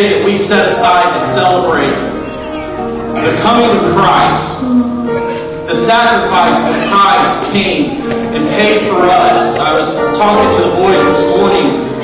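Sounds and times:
soft piano: 0.0 - 12.0
person singing or speaking: 3.2 - 11.8.

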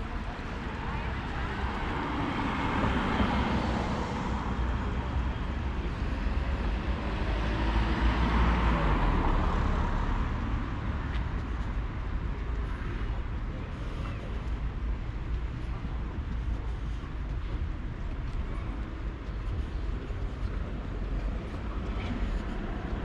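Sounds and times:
cars passing: 0.0 - 23.0
steady low rumble: 8.8 - 23.0.

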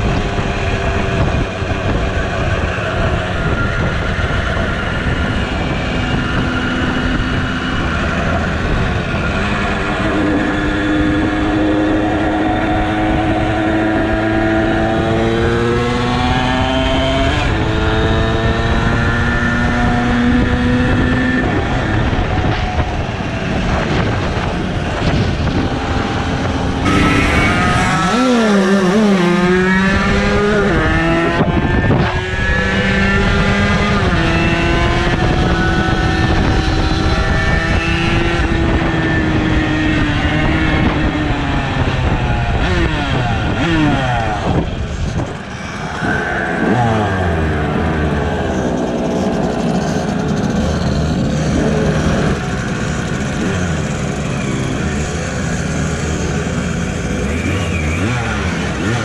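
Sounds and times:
wind noise: 0.0 - 59.0
moped engine running: 47.2 - 59.0.

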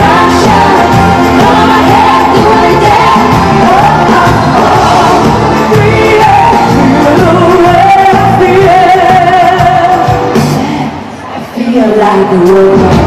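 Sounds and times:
live pop band: 0.0 - 13.0
woman singing into a microphone: 0.0 - 13.0.

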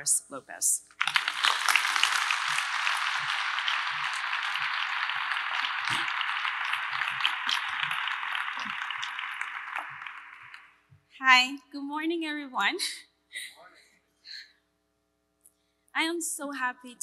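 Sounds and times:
audience applauding: 1.0 - 10.8.

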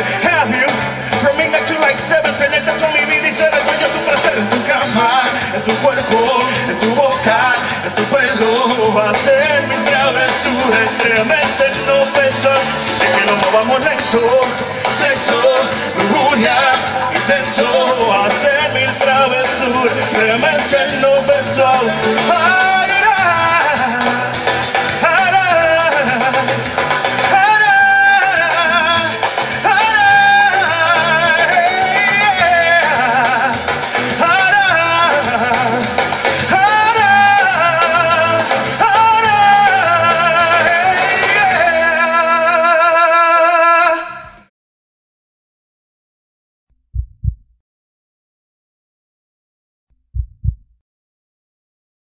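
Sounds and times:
live latin band music: 0.0 - 44.4
heartbeat thumps: 46.8 - 47.6, 49.9 - 50.8.

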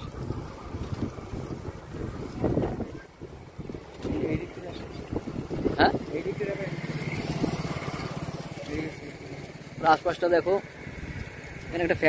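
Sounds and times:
small motorcycle engine: 4.0 - 11.9.

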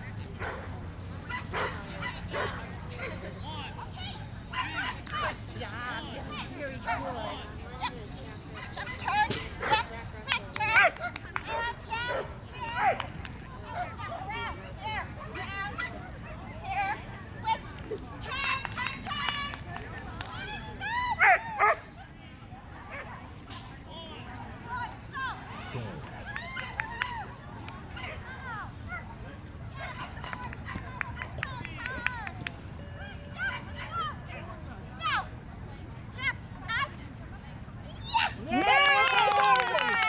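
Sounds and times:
people talking: 0.0 - 21.3, 21.9 - 40.0.

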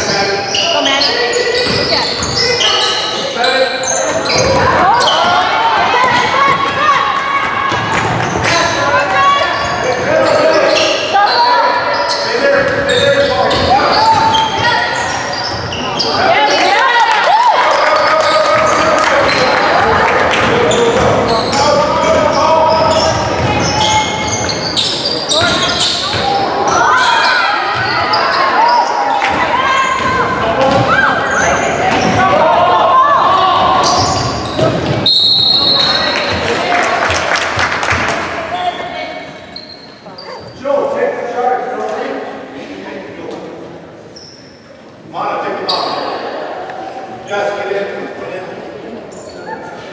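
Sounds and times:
sneakers squeaking on court: 0.0 - 6.9, 7.7 - 16.6, 20.4 - 32.2, 33.6 - 36.6, 38.6 - 40.6, 44.1 - 44.7.

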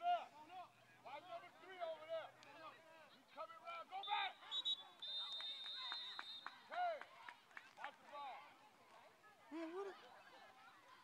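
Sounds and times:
referee's whistle blasts: 4.0 - 6.5.

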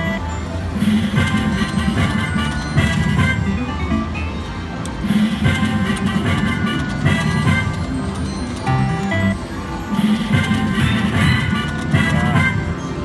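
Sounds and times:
chiming electronic slot machine music: 0.0 - 13.0
slot machine reels spinning: 0.8 - 3.4, 5.2 - 12.8.

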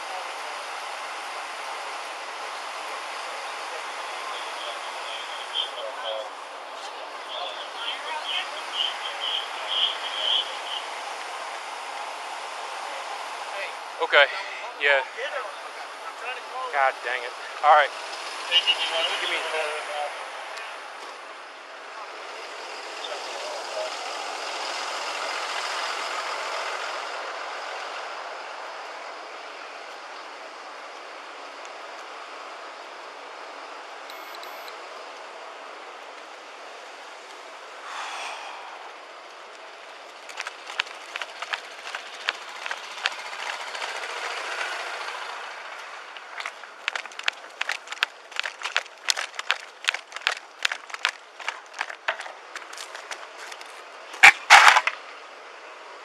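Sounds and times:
street traffic hiss: 0.0 - 56.0
footsteps: 40.0 - 44.1, 45.8 - 54.8.

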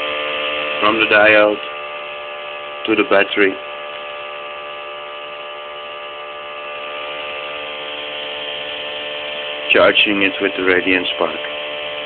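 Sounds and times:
pulse motor humming: 0.0 - 12.0.

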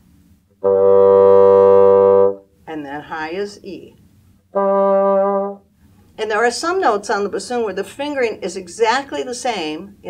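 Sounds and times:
bassoon low note: 0.6 - 2.4, 4.5 - 5.6
woman speaking: 2.7 - 4.0, 6.2 - 10.0.

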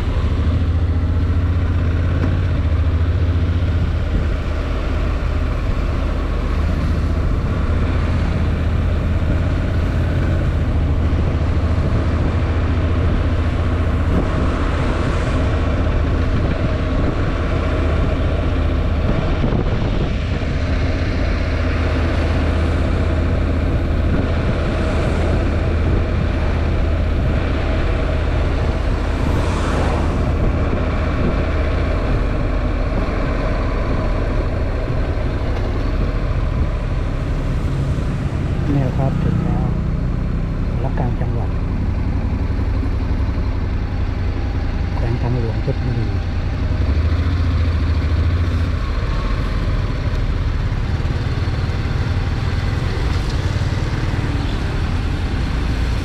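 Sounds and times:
wind rush: 0.0 - 41.6
motorcycle engine cruising: 0.0 - 56.0
tyre noise on wet road: 0.0 - 56.0.

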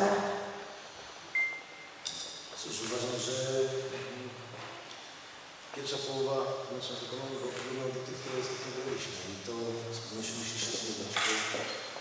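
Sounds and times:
high-pitched beep: 1.4 - 1.9.

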